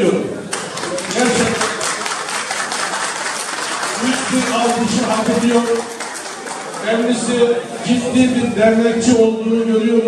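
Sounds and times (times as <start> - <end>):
audience applauding: 0.5 - 7.4.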